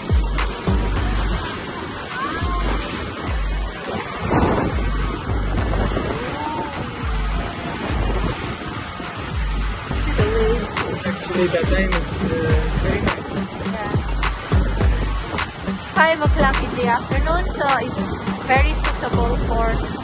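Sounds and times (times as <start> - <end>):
music with steady bass beat: 0.0 - 1.5, 2.4 - 8.4, 9.2 - 19.9
water rushing: 0.0 - 20.0
wind: 0.0 - 20.0.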